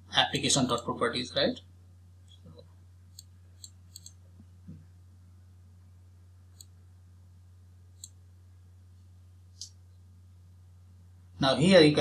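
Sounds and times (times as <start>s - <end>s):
steady low hum: 0.0s - 12.0s
computer mouse clicks: 3.1s - 4.2s, 6.5s - 6.8s, 8.0s - 8.2s.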